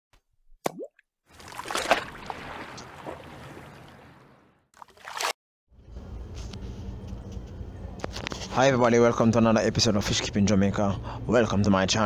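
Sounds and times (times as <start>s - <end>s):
wash of noise: 1.4s - 4.5s.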